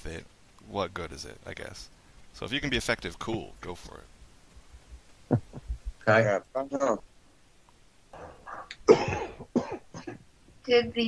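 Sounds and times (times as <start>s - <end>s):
person coughing: 8.9s - 10.2s.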